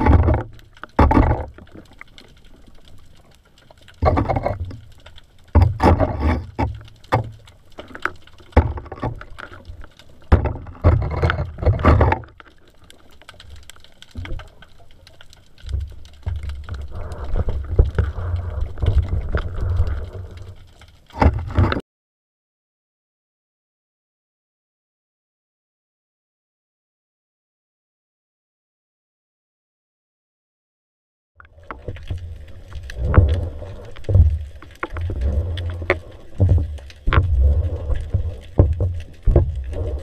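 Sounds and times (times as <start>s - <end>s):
small underwater clicks and crackles: 0.0s - 21.8s, 31.4s - 40.0s
underwater rumble of moving water: 0.0s - 21.8s, 31.4s - 40.0s.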